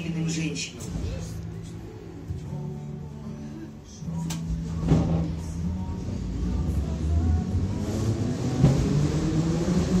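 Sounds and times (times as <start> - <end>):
train rumbling: 4.8 - 10.0.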